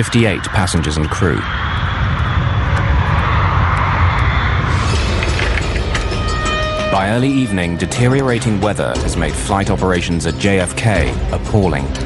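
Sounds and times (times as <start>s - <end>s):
jet engines rumbling: 0.0s - 12.0s
music: 4.6s - 12.0s.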